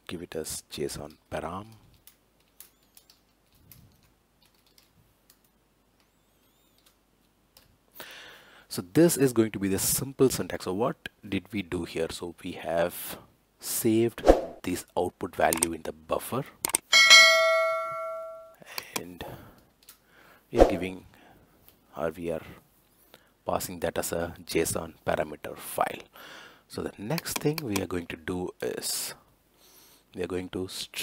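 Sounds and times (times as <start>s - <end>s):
faint keyboard typing: 1.6s - 7.8s
bright bell ding: 16.9s - 18.6s.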